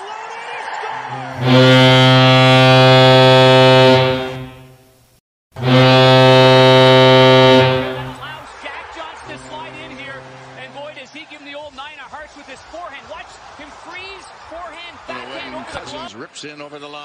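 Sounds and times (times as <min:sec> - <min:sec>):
goal horn blasts: 0:01.1 - 0:04.9, 0:05.6 - 0:08.4, 0:09.2 - 0:11.0.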